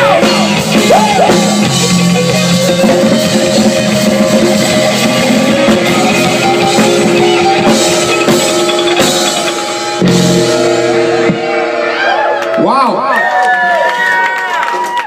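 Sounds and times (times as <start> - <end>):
drum kit: 0.0 - 12.5
bass guitar: 0.0 - 13.3
electric guitars: 0.0 - 13.3.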